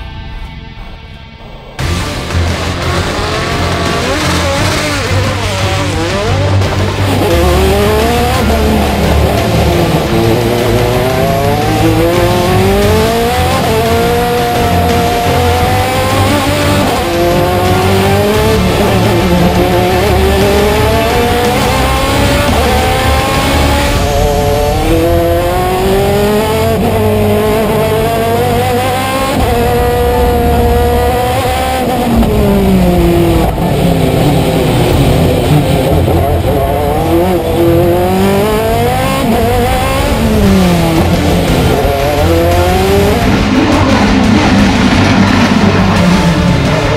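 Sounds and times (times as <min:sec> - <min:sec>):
racing engine revving with gear shifts: 0:01.8 - 0:46.9.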